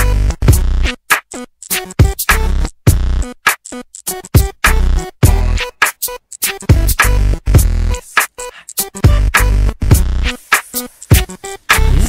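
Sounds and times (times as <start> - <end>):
chopped music stabs: 0.0 - 12.0
hip-hop drum machine beat: 0.0 - 12.0.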